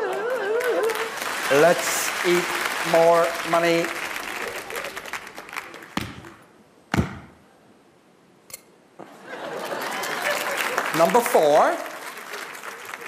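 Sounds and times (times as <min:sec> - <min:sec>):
audience applause: 0:00.0 - 0:06.0, 0:09.3 - 0:13.0
sharp knocks: 0:06.9 - 0:07.4.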